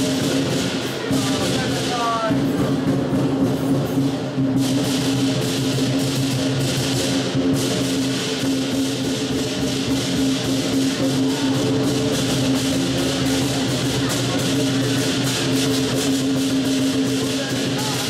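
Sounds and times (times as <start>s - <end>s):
cymbals crashing: 0.0s - 18.0s
drum beating: 0.0s - 18.0s.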